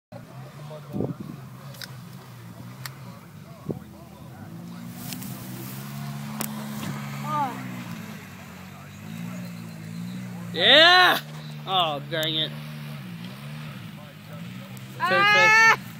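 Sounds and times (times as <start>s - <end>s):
atv engine running: 0.1s - 15.9s
quad churning through mud: 0.2s - 15.2s.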